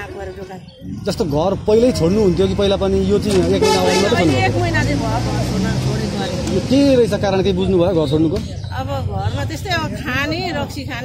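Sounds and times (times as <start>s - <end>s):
vehicle engine hum: 0.9s - 10.9s
woman talking: 4.0s - 6.2s, 8.7s - 11.0s.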